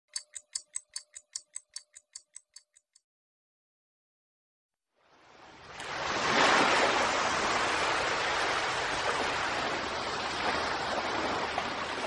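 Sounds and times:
rapid ticking: 0.0s - 3.0s.

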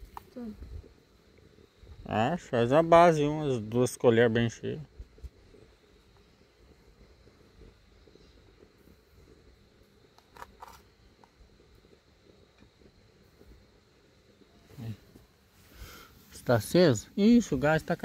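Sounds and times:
wind rumble on microphone: 0.0s - 1.1s.

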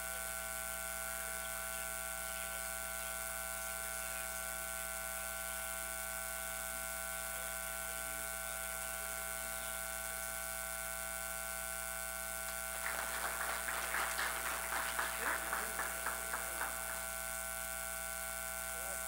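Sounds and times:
high steady electrical tones: 0.0s - 19.0s
low mains hum: 0.0s - 19.0s.

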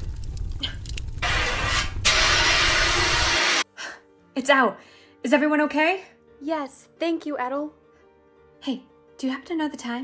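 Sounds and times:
fire extinguisher hissing: 1.2s - 3.7s.

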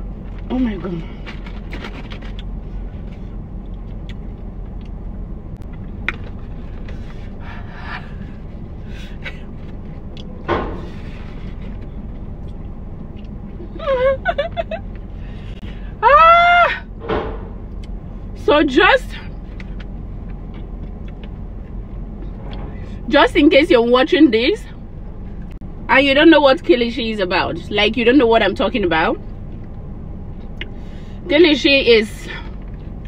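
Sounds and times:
car interior hum: 0.0s - 33.0s
faint chewing: 19.5s - 21.8s.

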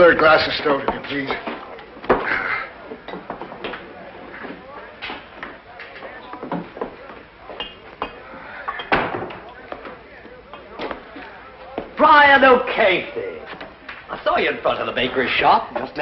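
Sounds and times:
faint murmur of voices: 0.0s - 16.0s.

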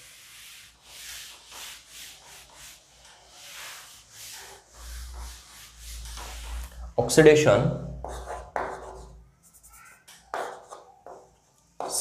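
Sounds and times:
duster wiping blackboard: 0.0s - 6.9s.

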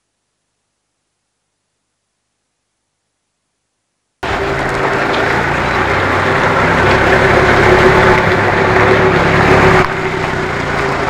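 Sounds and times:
street noise: 4.2s - 11.0s
vehicle engine humming: 4.2s - 11.0s.

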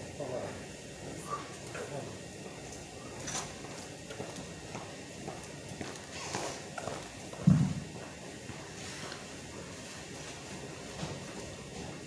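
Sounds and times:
heavy low thump: 7.4s - 7.9s.

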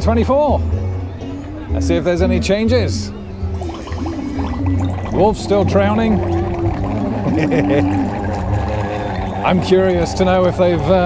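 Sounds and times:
wind buffeting microphone: 1.5s - 11.0s
water bubbling and gurgling: 3.1s - 11.0s.

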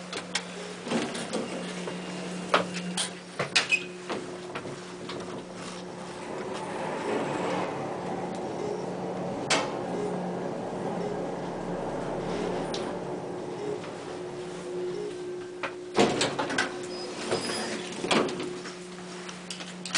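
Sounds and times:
elevator hum: 0.0s - 19.9s
elevator car rushing rumble: 0.4s - 18.9s.

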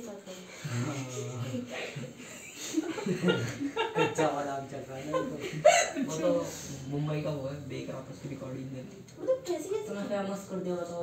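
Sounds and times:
woman laughing: 5.2s - 6.2s.

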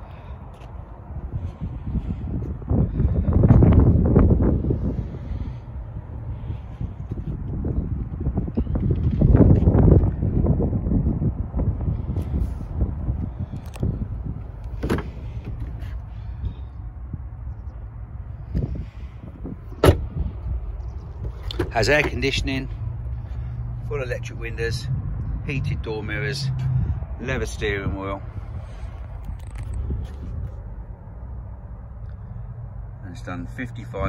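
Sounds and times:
wind rumbling on microphone: 0.0s - 34.0s
car door latch click: 19.8s - 20.1s.

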